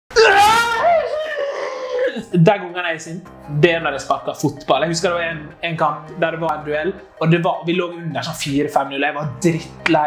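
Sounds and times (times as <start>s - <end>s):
man yelling in frustration: 0.2s - 2.2s.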